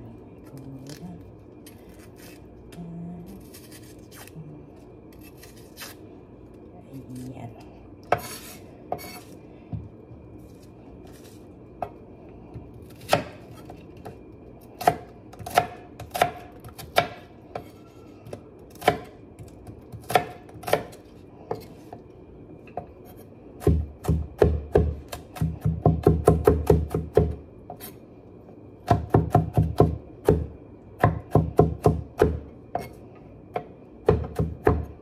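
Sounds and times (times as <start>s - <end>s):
knife chopping on wooden board: 23.6s - 27.4s.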